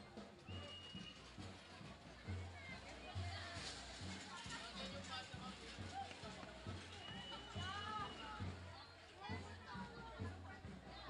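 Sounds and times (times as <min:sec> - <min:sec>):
crowd chattering and calling out: 0:00.0 - 0:11.0.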